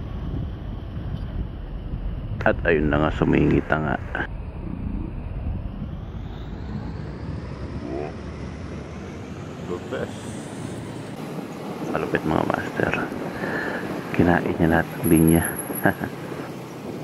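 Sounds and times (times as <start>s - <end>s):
road noise: 0.0s - 17.0s.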